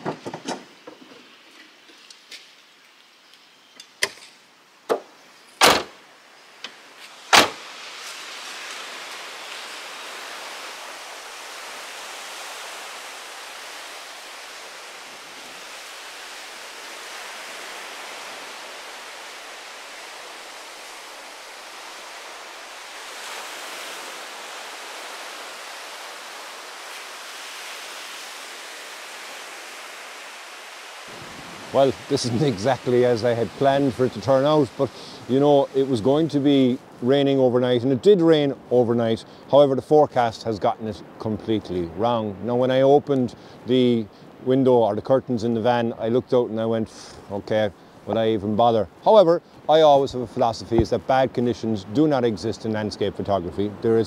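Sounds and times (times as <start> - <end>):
sharp clunks and knocks: 0.0 - 1.3, 4.9 - 6.0, 6.6 - 7.6
small waves breaking on shore: 5.6 - 54.0.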